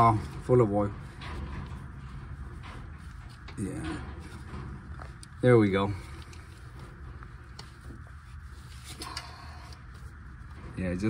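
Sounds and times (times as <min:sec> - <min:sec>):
low steady background hum: 0:00.0 - 0:11.0.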